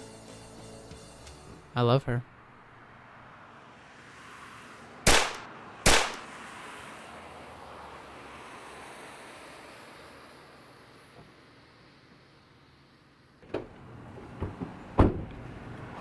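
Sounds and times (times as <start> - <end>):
sharp loud bangs: 5.0 - 6.2.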